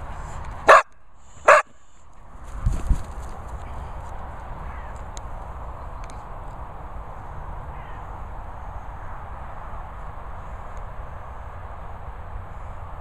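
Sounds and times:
dog barking: 0:00.7 - 0:00.9, 0:01.5 - 0:01.7.

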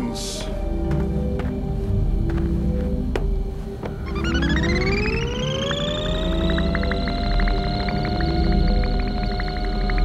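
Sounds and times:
rising electronic sci-fi tone: 0:04.1 - 0:10.0.

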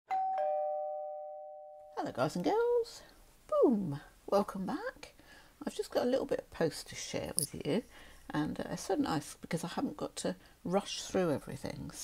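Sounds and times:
two-note doorbell chime: 0:00.1 - 0:02.0.

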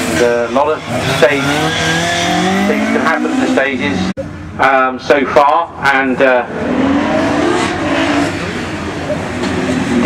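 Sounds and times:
car engine accelerating: 0:00.0 - 0:04.2, 0:06.3 - 0:10.0.

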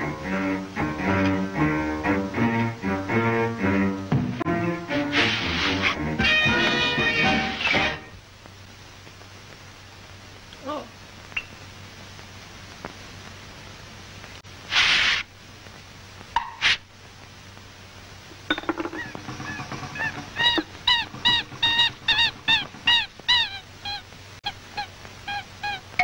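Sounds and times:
background hiss: 0:00.0 - 0:26.0.

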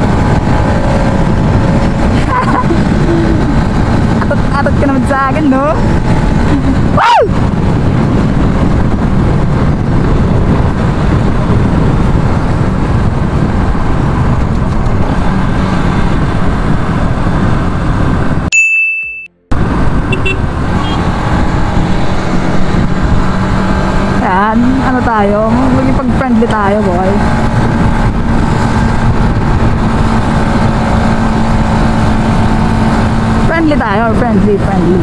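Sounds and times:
motorcycle engine drone: 0:00.0 - 0:18.5, 0:19.3 - 0:35.0
wind and road noise: 0:00.0 - 0:35.0
short high tone: 0:18.6 - 0:19.5.

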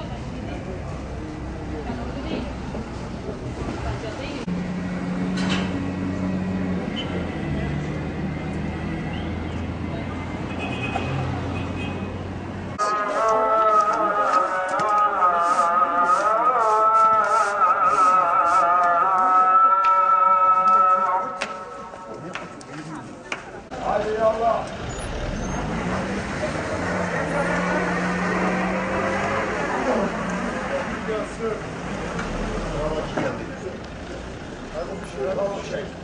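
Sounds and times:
traffic hum: 0:00.0 - 0:36.0
car engine revving: 0:24.7 - 0:35.1.

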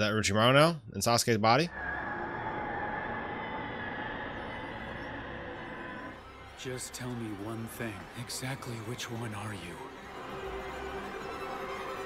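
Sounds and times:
steady drone with held tones: 0:01.7 - 0:09.3.

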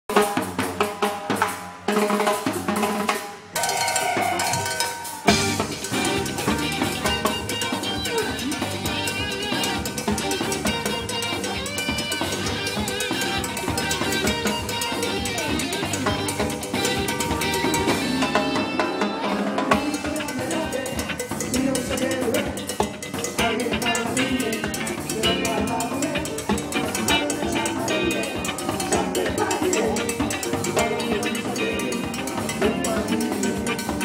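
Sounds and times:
drums and timbales: 0:00.1 - 0:34.0
live band with guitars: 0:00.1 - 0:34.0.

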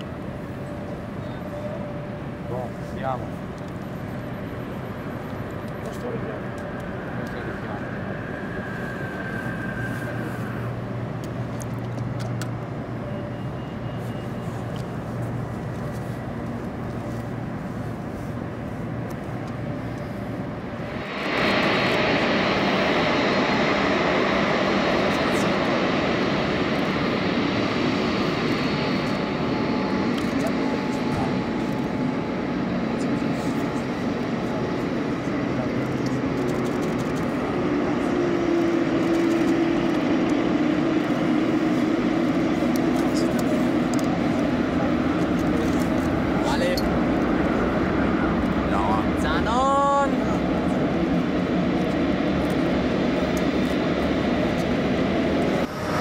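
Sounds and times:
jet engine roar with whine: 0:00.0 - 0:56.0.

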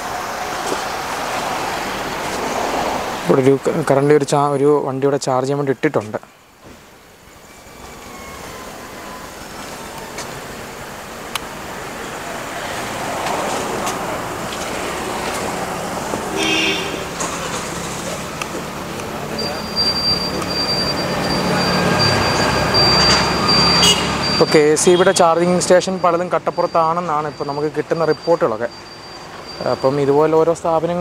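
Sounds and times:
road traffic noise: 0:00.0 - 0:31.0
indistinct voices: 0:07.4 - 0:28.7.

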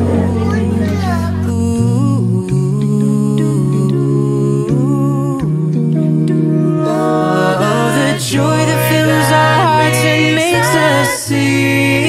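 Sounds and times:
sung bass line: 0:00.0 - 0:12.0
voices humming chords: 0:00.0 - 0:12.0.

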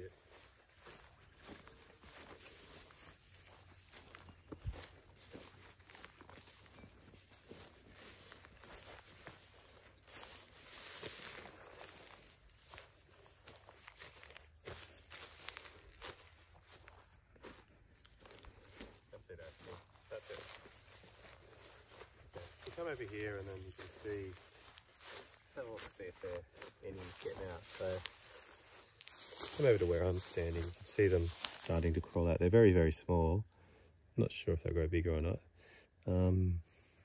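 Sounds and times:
footsteps through grass: 0:00.0 - 0:32.9.

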